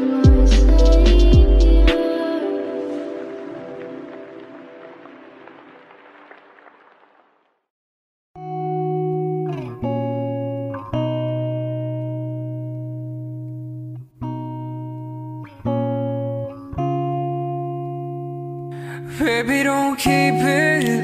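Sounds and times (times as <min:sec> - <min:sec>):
acoustic guitar chords: 0:00.0 - 0:05.9, 0:08.4 - 0:21.0.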